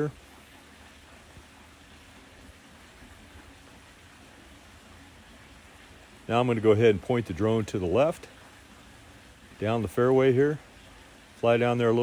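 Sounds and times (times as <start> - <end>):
outdoor microphone hiss: 0.0 - 12.0.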